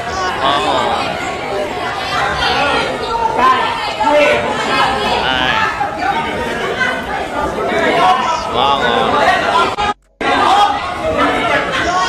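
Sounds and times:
people arguing: 0.0 - 12.0.

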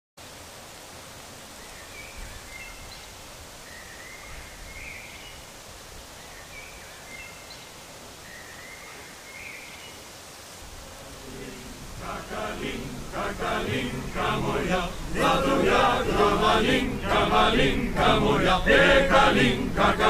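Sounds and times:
wind hiss: 0.2 - 20.0
small bird singing: 1.6 - 5.5.

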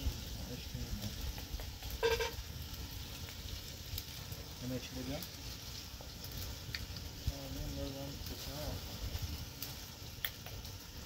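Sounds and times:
food frying in a pan: 0.0 - 11.0.

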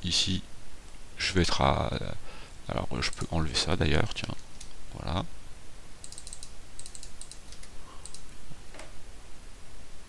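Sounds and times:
computer keyboard keys tapping: 6.0 - 8.9.

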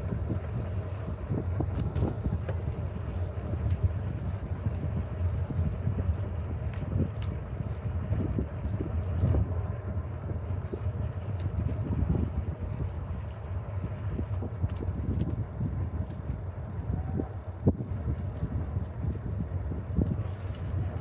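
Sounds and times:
wind buffeting microphone: 0.0 - 21.0
faint bicycle clicks: 1.7 - 9.4, 12.8 - 16.9.

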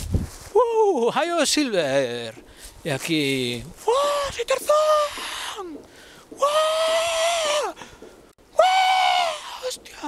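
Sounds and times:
man's loud jungle yell: 6.4 - 7.8, 8.6 - 9.7.

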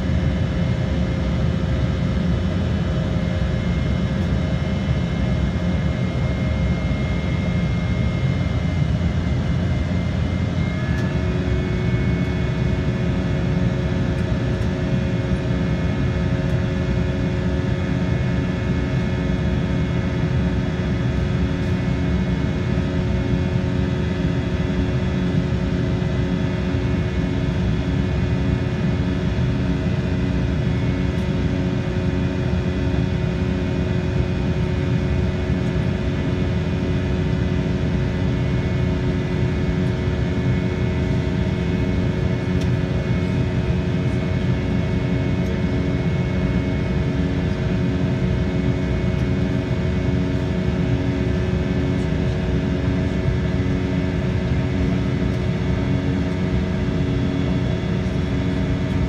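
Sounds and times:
aircraft cabin engine rush: 0.0 - 59.0
steady whining tones: 2.4 - 15.9.

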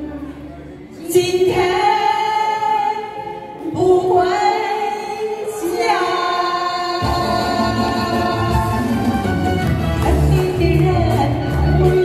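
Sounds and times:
women singing a pop ballad duet: 1.0 - 9.1, 10.0 - 12.0
backing music over pa: 6.7 - 12.0.

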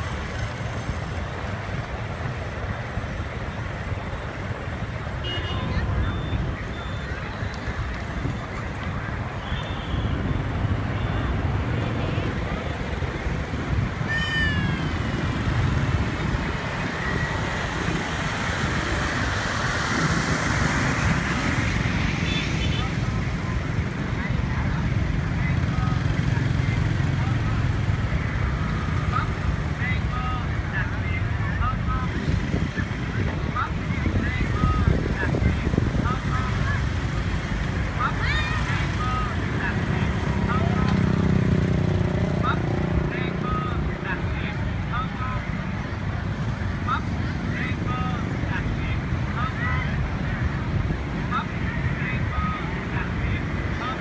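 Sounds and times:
traffic engine and road rumble: 0.0 - 54.0
crowd voices: 2.8 - 20.1, 21.0 - 54.0.

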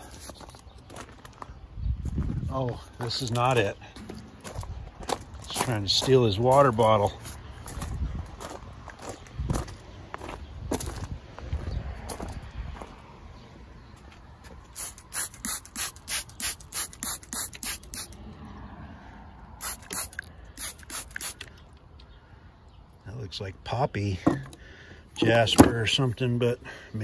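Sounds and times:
spray bottle squirting water: 14.7 - 18.2, 19.6 - 21.6.

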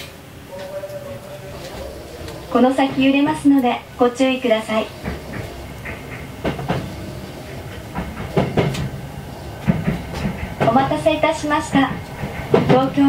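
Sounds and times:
wheel clacks over rail joints: 0.0 - 9.0, 9.6 - 13.0
train low rumble: 0.0 - 13.0.

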